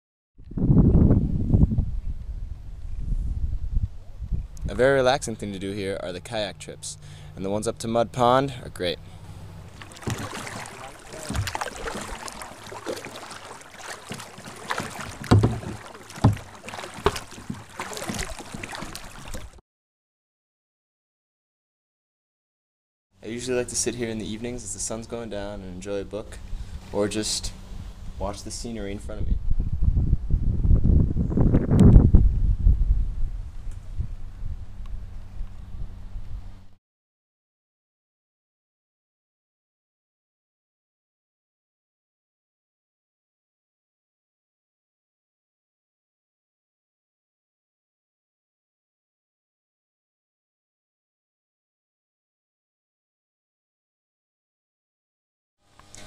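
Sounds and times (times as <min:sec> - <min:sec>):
wind buffeting microphone: 0:00.4 - 0:05.3, 0:29.0 - 0:36.7
water sloshing around boats: 0:04.8 - 0:19.6, 0:23.3 - 0:28.7, 0:55.6 - 0:56.0
kayak paddles splashing: 0:09.0 - 0:19.6
knocks on boat: 0:09.7 - 0:19.4.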